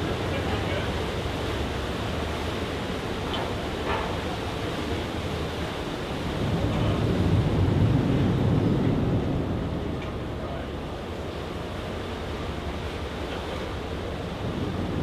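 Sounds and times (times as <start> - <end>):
low rumble on ferry deck: 0.0 - 15.0.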